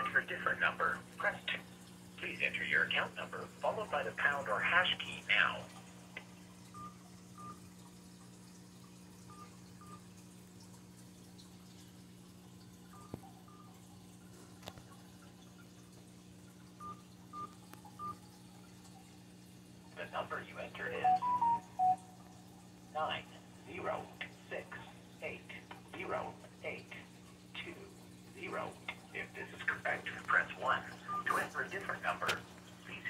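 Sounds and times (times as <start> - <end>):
phone keypad beeps: 6.8 - 7.6, 9.3 - 10.0, 16.8 - 18.2, 20.9 - 22.1, 31.1 - 31.3
person speaking: 20.0 - 22.0, 23.0 - 33.0.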